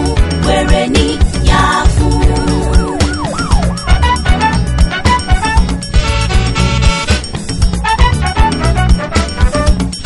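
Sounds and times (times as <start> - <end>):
drum and bass beat: 0.0 - 10.0
siren swooping up and down: 2.3 - 4.7.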